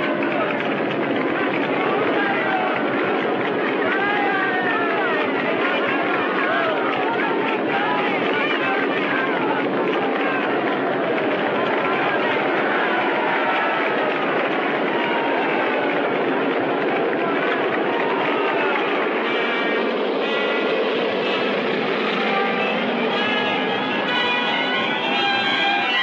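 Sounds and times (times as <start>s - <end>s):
crowd cheering and shouting: 0.0s - 26.0s
propeller airplane engines running: 0.0s - 26.0s
brass orchestral music: 18.0s - 26.0s.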